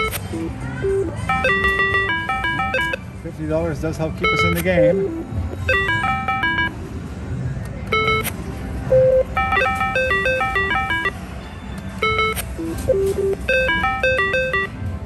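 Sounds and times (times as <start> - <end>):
slot machine chimes: 0.0 - 3.1, 4.1 - 6.8, 7.9 - 8.3, 8.9 - 11.2, 12.0 - 14.8.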